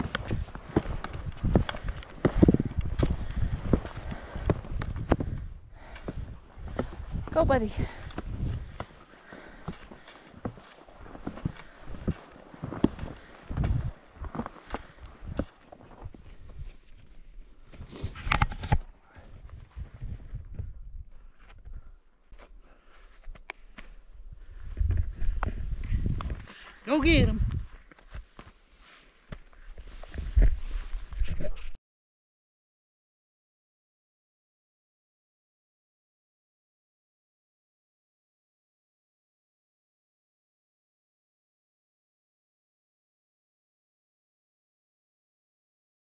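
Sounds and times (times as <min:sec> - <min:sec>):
skis crunching on packed snow: 0:00.0 - 0:04.8, 0:08.6 - 0:18.3, 0:24.6 - 0:31.4.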